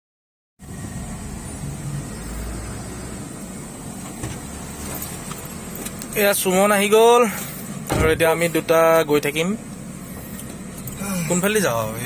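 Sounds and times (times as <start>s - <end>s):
car cabin engine and road noise: 0.6s - 12.0s.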